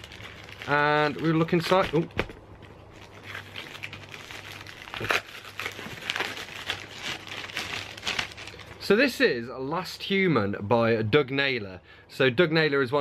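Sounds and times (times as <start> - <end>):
parcel packaging crinkling: 0.0 - 8.9.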